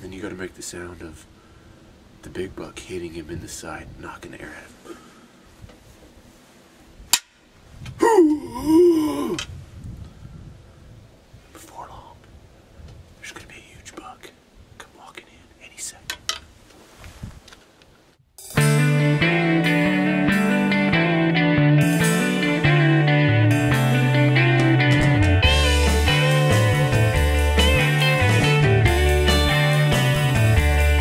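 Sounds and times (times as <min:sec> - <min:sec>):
man groaning: 0:08.0 - 0:09.5
music: 0:18.4 - 0:31.0.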